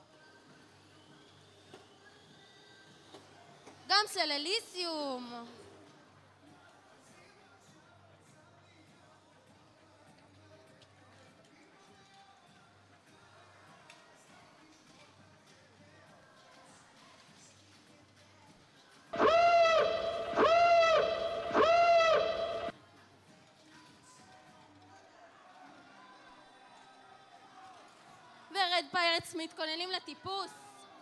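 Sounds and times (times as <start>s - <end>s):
faint arena background: 0.0s - 31.0s
loud horn-like warning tones: 19.2s - 22.7s.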